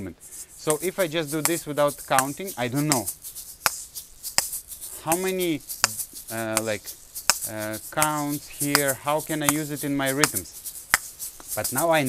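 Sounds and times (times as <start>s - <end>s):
shaker seeds rattling: 0.0s - 12.0s
shaker shells clicking: 0.2s - 12.0s.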